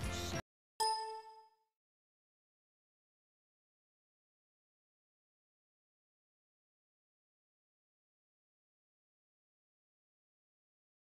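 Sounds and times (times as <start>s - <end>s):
bell-like ding: 0.8s - 1.7s.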